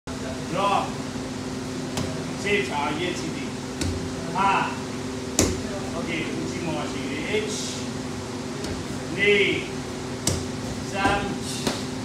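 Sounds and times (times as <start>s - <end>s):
steady mechanical hum: 0.1s - 12.0s
kick slapping focus mitt: 10.2s - 11.9s.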